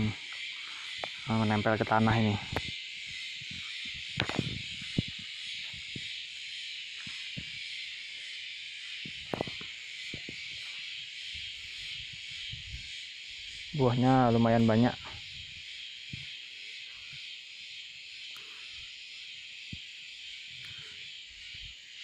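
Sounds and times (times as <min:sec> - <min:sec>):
high hiss: 0:00.0 - 0:22.0
plant leaves rustling and snapping: 0:04.2 - 0:05.2, 0:09.2 - 0:10.4.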